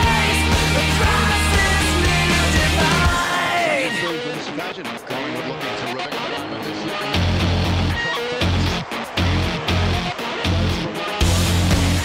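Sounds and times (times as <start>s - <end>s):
rock song: 0.0s - 12.0s.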